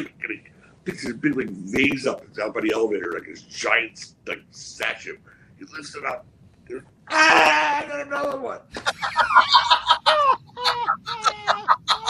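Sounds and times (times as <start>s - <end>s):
men laughing hard: 8.8s - 12.0s.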